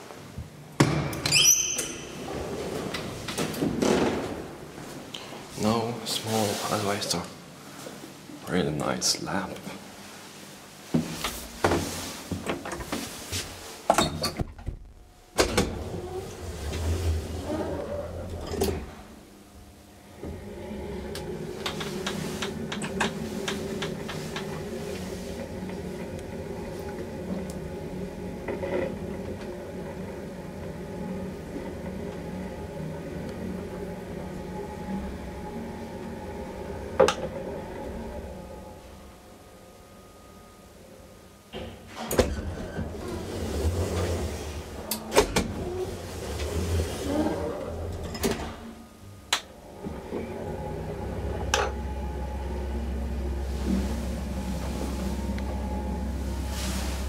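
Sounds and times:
elevator motor hum: 0.0s - 57.0s
low hum: 14.3s - 41.4s, 42.6s - 57.0s
elevator doors clunking: 20.0s - 57.0s.

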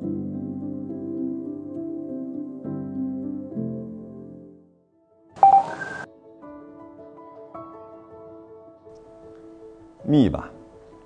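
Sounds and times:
soft music with held notes: 0.0s - 11.0s
two-tone electronic beep: 5.4s - 6.1s.

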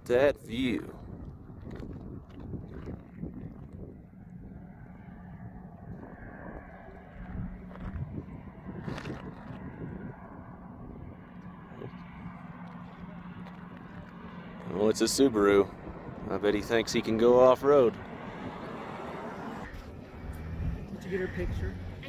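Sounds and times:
low vehicle hum: 0.0s - 22.0s
wind noise on microphone: 0.9s - 4.7s, 5.3s - 11.9s.

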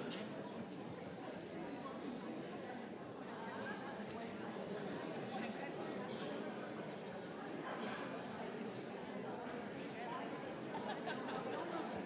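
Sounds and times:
murmur of many people talking: 0.0s - 12.0s.

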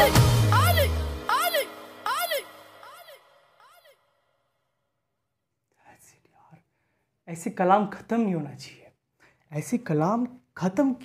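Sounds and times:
man whispering: 5.7s - 6.7s.

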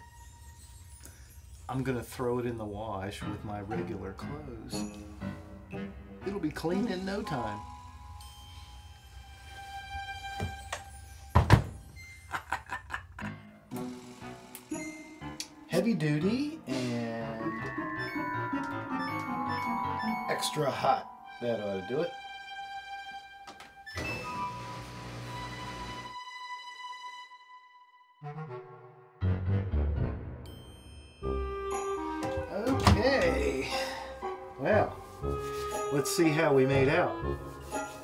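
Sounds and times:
chime-like background music: 0.0s - 12.7s, 14.7s - 23.2s, 30.4s - 38.0s.

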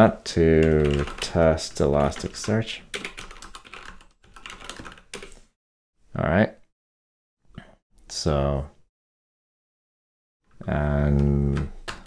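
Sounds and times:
typing on keyboard: 0.6s - 1.4s, 2.0s - 5.4s, 11.2s - 12.0s.

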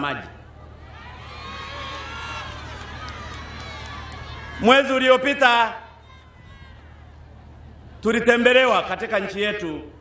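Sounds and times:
crowd calling out: 0.0s - 8.0s
steady low hum: 0.0s - 10.0s.

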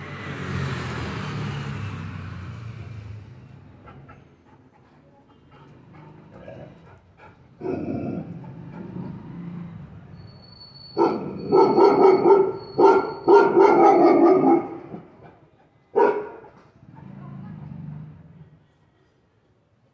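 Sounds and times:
large dog barking: 5.6s - 9.5s, 11.0s - 17.1s.

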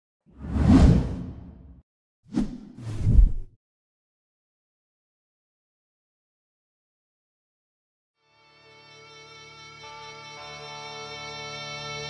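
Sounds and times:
whooshes: 0.3s - 3.5s.

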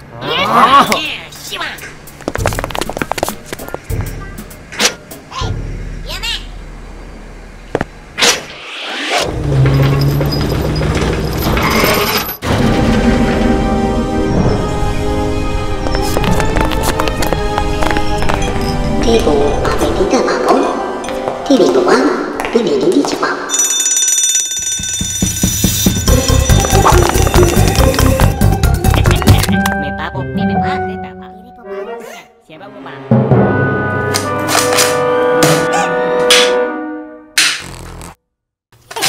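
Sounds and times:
metro train rumble: 12.4s - 16.1s
background music: 12.4s - 23.1s, 25.2s - 37.6s.

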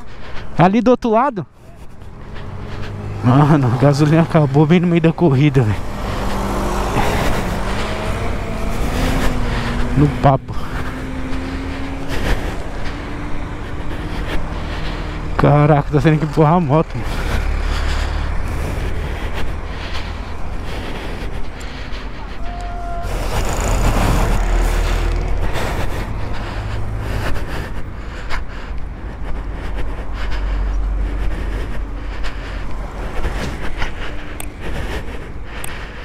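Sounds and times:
road traffic: 0.0s - 36.0s
vehicle passing loudly: 1.4s - 36.0s.

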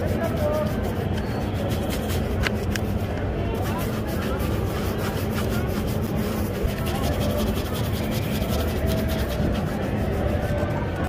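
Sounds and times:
brush scrubbing leather shoe: 0.0s - 11.0s
street background noise: 0.0s - 11.0s.

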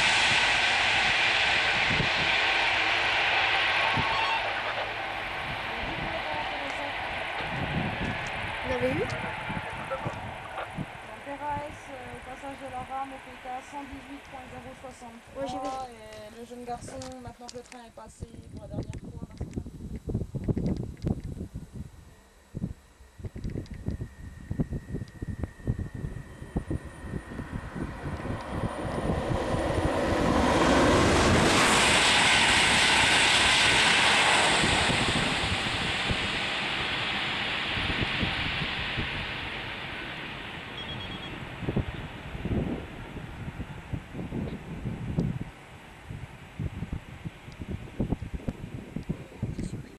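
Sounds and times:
high-speed train passing: 0.0s - 18.1s, 22.4s - 49.4s.

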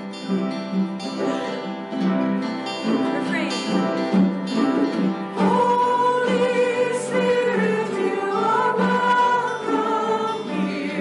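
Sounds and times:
instrumental accompaniment: 0.0s - 11.0s
group singing a hymn: 5.2s - 11.0s.

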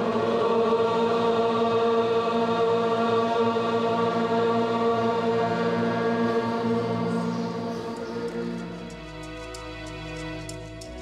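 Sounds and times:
chant-like drone: 0.0s - 11.0s.

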